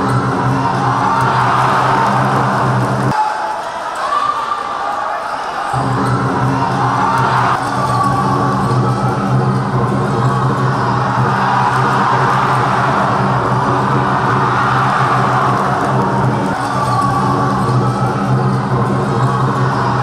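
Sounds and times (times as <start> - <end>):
crowd noise in sports hall: 0.0 - 20.0
steady low droning tone: 5.8 - 20.0.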